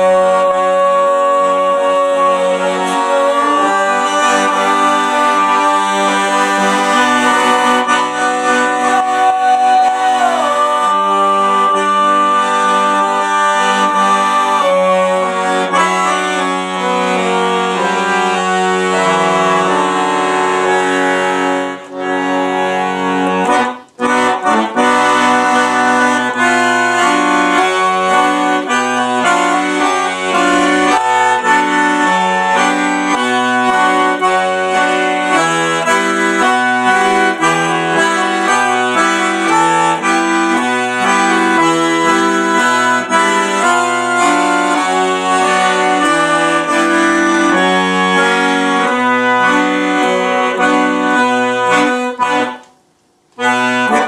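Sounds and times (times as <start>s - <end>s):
piano accordion playing: 0.0s - 54.0s.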